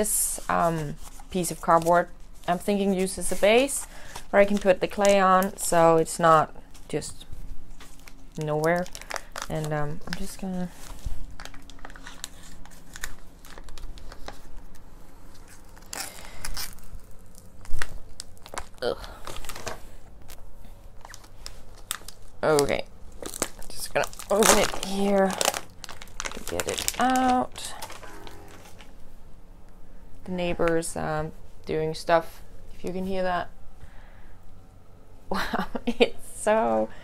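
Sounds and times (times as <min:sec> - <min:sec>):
foil and plastic crinkling: 0:00.0 - 0:20.4, 0:21.0 - 0:29.0
low steady rumble: 0:00.0 - 0:37.0
faint pitched tone: 0:27.8 - 0:28.8.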